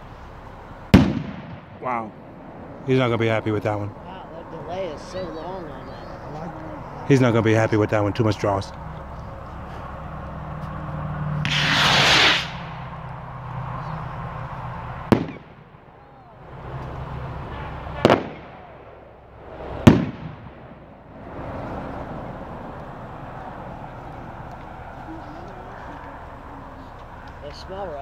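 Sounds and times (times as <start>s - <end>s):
firework bangs with echo: 0.9s - 1.9s, 11.4s - 12.9s, 15.1s - 15.7s, 17.9s - 21.0s
firework rocket rushing hiss: 11.4s - 13.0s.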